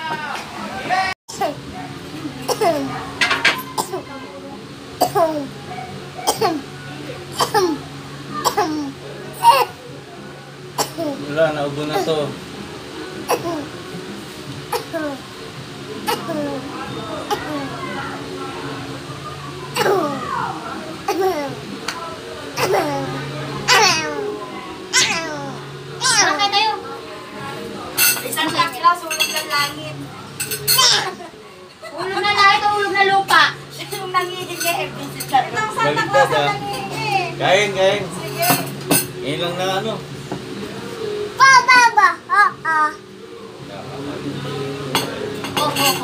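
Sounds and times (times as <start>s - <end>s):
small child crying: 24.9s - 26.4s.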